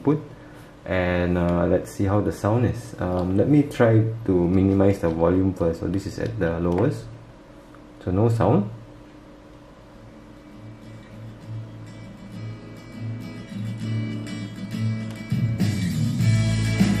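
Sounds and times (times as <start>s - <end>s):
music from small speakers: 11.5s - 17.0s.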